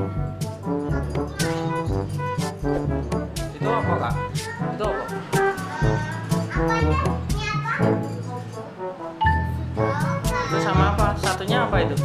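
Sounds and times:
background music with bass line: 0.0s - 12.0s
young children's voices: 1.0s - 1.9s, 4.3s - 8.2s, 9.4s - 11.0s.

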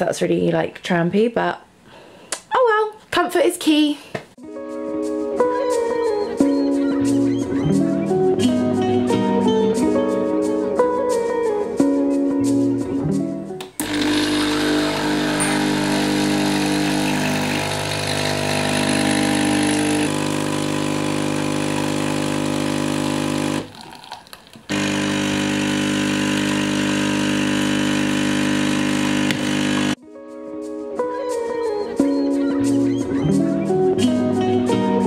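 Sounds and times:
coffee machine buzzing hum: 13.7s - 24.0s, 24.7s - 30.0s.

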